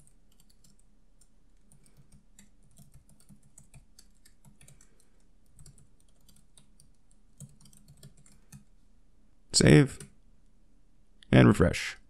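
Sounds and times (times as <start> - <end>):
typing on computer keyboard: 0.0 - 8.7, 10.0 - 10.2.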